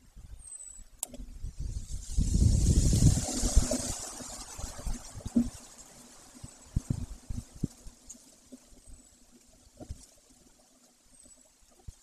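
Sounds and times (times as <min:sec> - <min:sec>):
sharp click: 0:01.0 - 0:01.2
wind buffeting microphone: 0:01.2 - 0:08.0.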